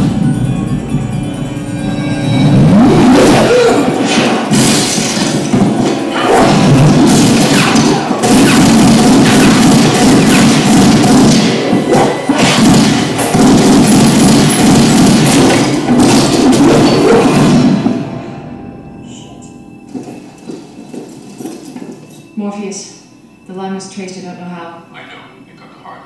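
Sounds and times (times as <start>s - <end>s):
tense film music: 0.0s - 25.9s
fight thuds crashes and impacts: 3.4s - 18.0s.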